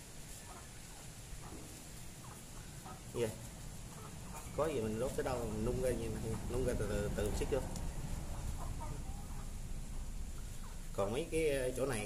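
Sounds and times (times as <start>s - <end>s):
faint chicken clucking: 0.0s - 12.0s
steady low rumble: 2.6s - 12.0s.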